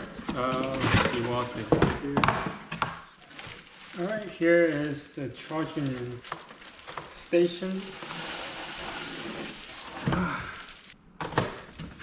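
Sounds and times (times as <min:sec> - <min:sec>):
plastic wrapping rustling: 0:03.0 - 0:11.0.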